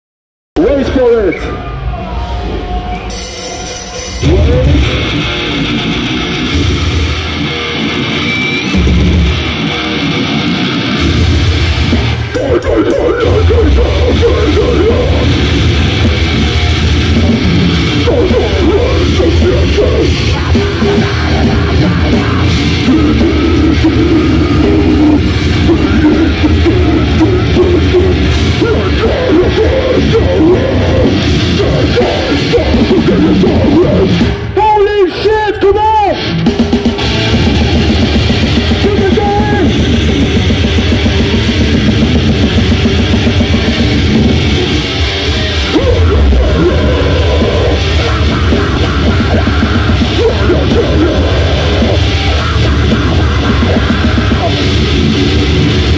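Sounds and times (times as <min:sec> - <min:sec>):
death metal band playing live: 0:00.6 - 0:55.9.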